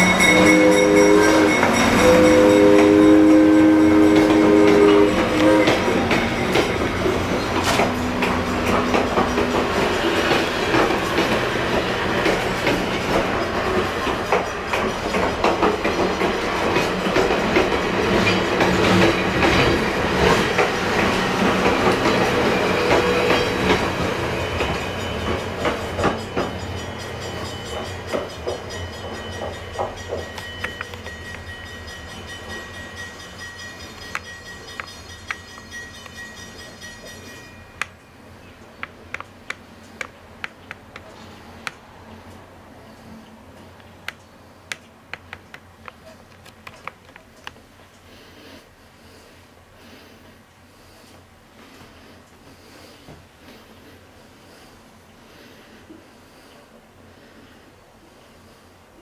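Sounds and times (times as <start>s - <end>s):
train wheels clicking over rail joints: 0.0s - 48.1s.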